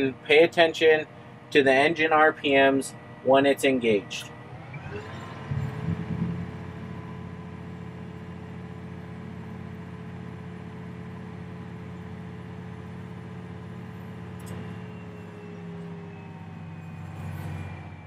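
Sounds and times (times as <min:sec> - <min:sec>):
tractor diesel engine running: 0:00.0 - 0:18.0.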